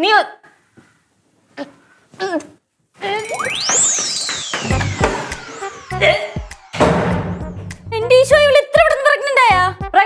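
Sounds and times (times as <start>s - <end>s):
sliding whistle-like tone: 3.0s - 7.8s
background music with low beats: 4.6s - 8.5s.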